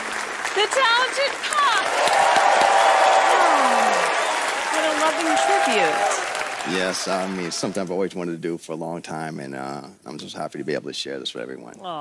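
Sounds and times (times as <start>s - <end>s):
audience applauding: 0.0s - 8.2s
shouted cheers: 0.7s - 7.8s
man speaking: 6.7s - 11.8s.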